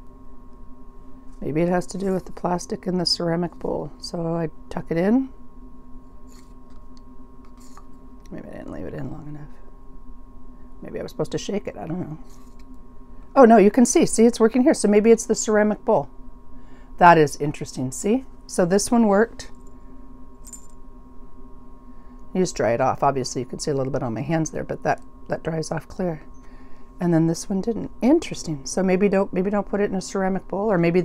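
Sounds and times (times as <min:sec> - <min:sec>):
faint electrical hum: 0:00.0 - 0:31.0.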